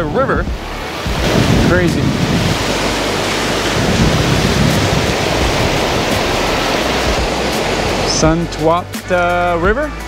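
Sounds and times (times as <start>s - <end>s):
river rapids rushing over rocks: 0.8s - 8.4s.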